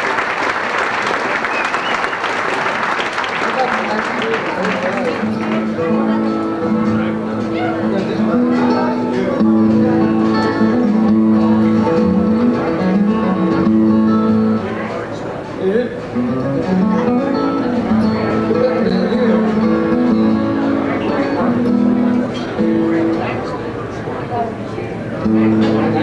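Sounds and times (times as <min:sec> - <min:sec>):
two acoustic guitars playing: 0:03.6 - 0:26.0.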